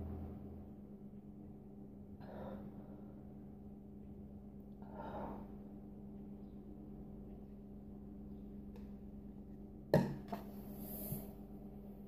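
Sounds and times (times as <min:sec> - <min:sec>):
steady low hum: 0:00.0 - 0:12.0
plastic cup knocking on countertop: 0:09.9 - 0:10.4.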